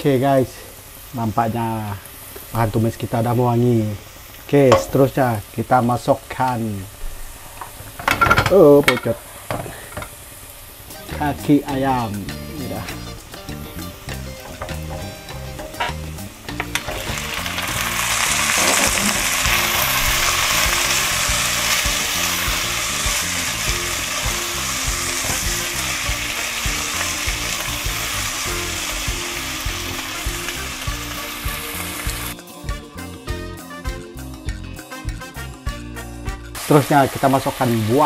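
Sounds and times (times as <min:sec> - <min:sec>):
food sizzling in hot oil: 0:00.0 - 0:34.5, 0:36.5 - 0:38.0.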